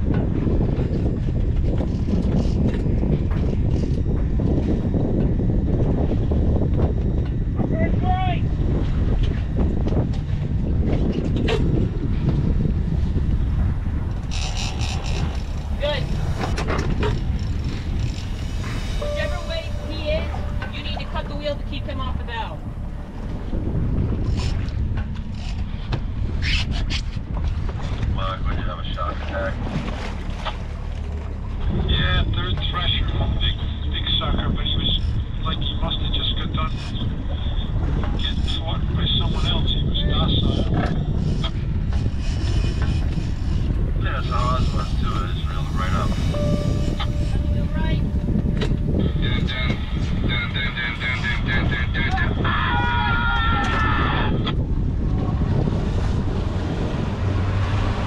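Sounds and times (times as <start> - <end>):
wind buffeting microphone: 0.0 - 58.0
small boat engine running: 8.5 - 28.2, 54.6 - 58.0
crew talking: 14.2 - 19.0, 44.2 - 46.3
steady high-pitched tone: 18.7 - 24.0, 44.8 - 49.7.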